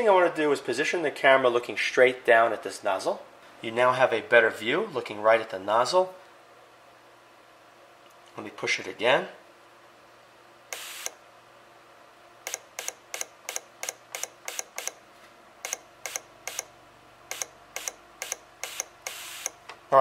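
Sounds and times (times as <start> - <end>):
fuel injector solenoid clicking: 10.7 - 11.2, 12.4 - 15.0, 15.6 - 16.7, 17.3 - 19.8.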